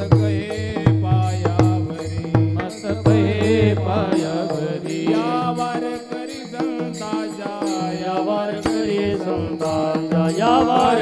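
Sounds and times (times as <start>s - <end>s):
hand cymbals striking a beat: 0.0s - 11.0s
men singing a devotional chant: 0.0s - 11.0s.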